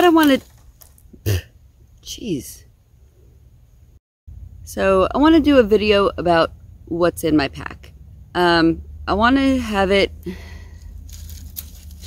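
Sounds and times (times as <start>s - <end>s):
briar stem rustling and scraping: 0.0s - 1.2s, 10.7s - 12.0s
steady low rumble: 2.7s - 11.8s.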